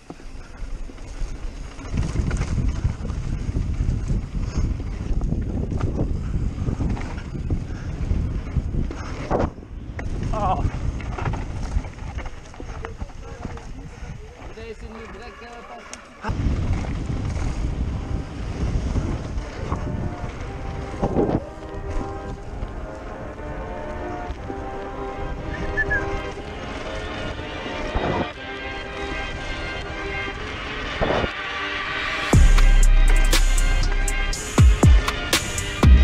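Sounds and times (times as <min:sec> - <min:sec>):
bike tyres rumbling and rattling: 0:00.0 - 0:31.4
wind buffeting microphone: 0:00.2 - 0:31.4.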